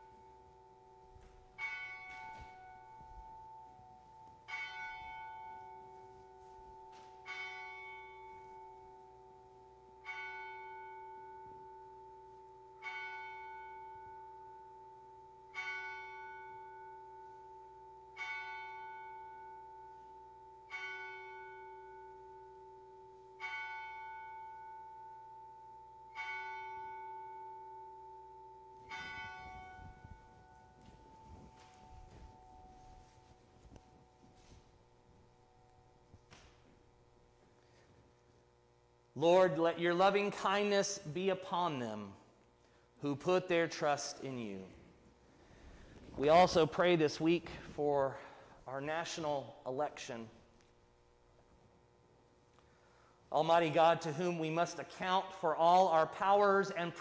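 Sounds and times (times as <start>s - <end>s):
bell tolling: 25.9s - 36.8s.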